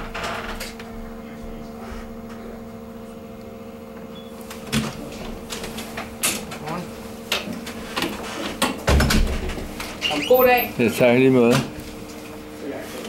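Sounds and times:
coffee machine humming: 0.0s - 13.0s.

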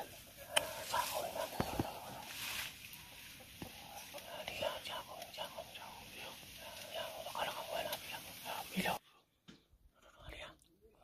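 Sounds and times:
person whispering: 0.3s - 2.6s, 3.6s - 9.2s, 9.9s - 11.0s.

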